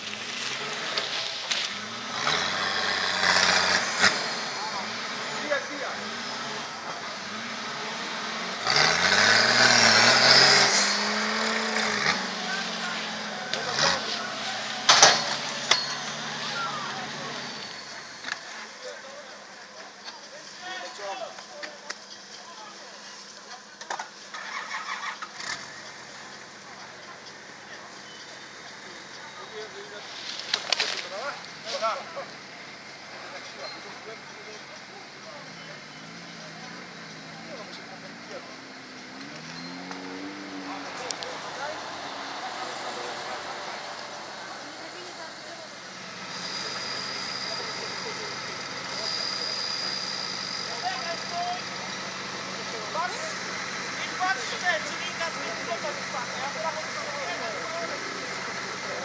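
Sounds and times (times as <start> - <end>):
off-road engine revving: 0.0 - 22.4, 23.0 - 59.0.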